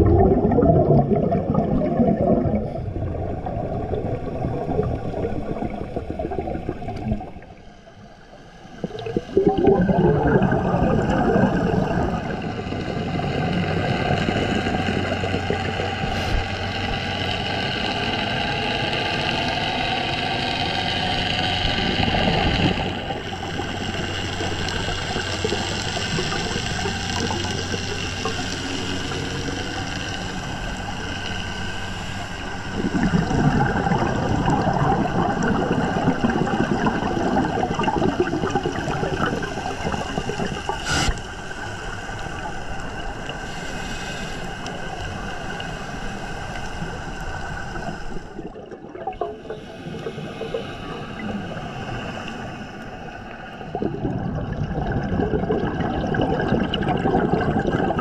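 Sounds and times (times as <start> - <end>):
exhaled bubbles gurgling: 0.0 - 43.8, 44.5 - 58.0
steady low hum: 0.0 - 58.0
scuba regulator breaths: 16.0 - 16.6, 39.8 - 41.4, 43.3 - 48.5, 49.2 - 54.0.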